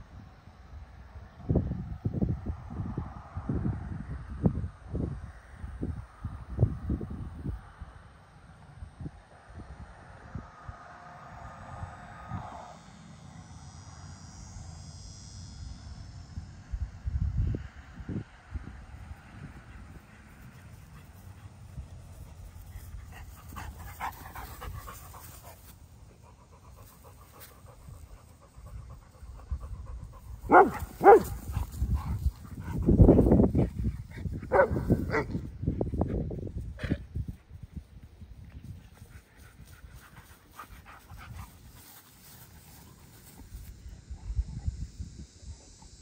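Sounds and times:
dogs panting: 20.0s - 36.2s, 38.7s - 43.4s
dogs scuffling in grass: 20.3s - 25.9s, 38.6s - 43.7s.

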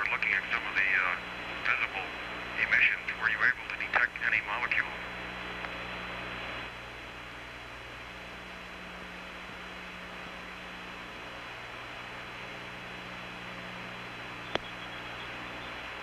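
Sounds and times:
low mains hum: 0.0s - 16.0s
radio hiss: 0.0s - 16.0s.

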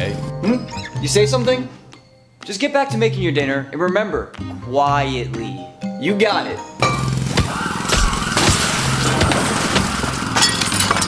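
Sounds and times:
glass and crockery crashing: 8.0s - 11.0s.

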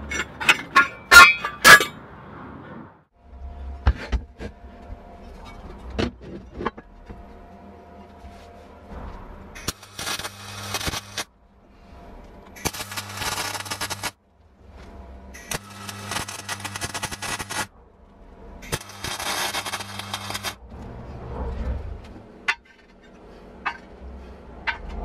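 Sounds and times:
welding arc crackling: 9.6s - 11.3s, 12.6s - 14.2s, 15.4s - 17.7s, 18.6s - 20.6s.

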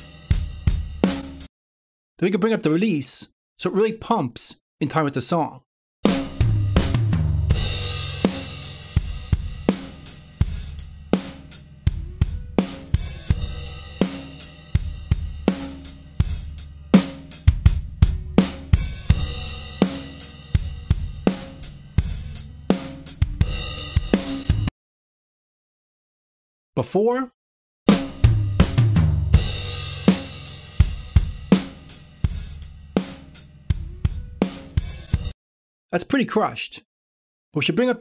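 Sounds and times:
compressed drum kit beat: 0.0s - 1.5s, 6.0s - 24.7s, 27.9s - 35.4s.

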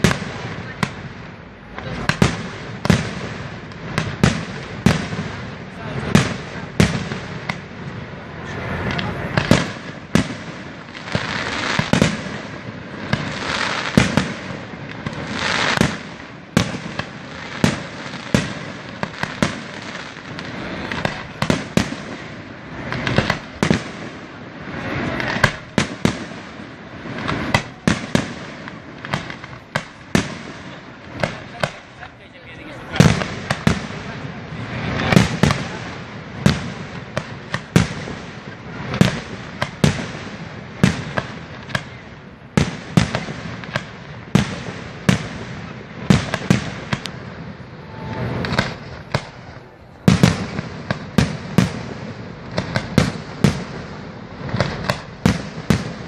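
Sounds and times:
fireworks bangs: 0.0s - 56.0s
fireworks crackling: 0.0s - 56.0s.

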